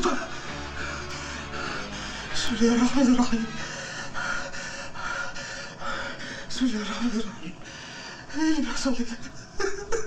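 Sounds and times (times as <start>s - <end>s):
man panting heavily: 0.0s - 2.4s, 3.4s - 8.6s.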